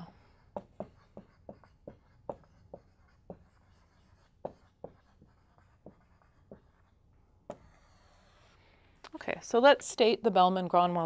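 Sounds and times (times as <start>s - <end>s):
marker writing on whiteboard: 0.0s - 8.6s.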